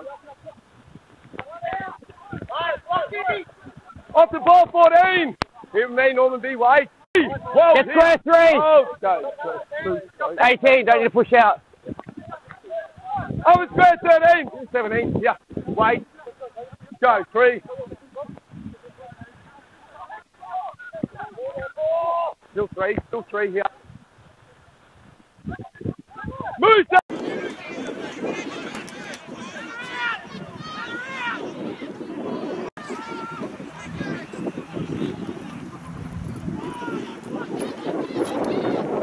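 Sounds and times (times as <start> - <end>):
distant players shouting: 26.7 - 39.0.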